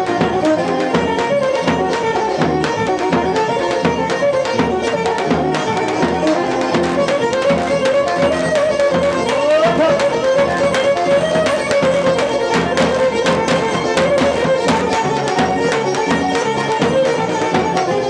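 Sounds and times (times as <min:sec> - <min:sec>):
bowed string melody: 0:00.0 - 0:18.0
drum beats: 0:00.0 - 0:18.0.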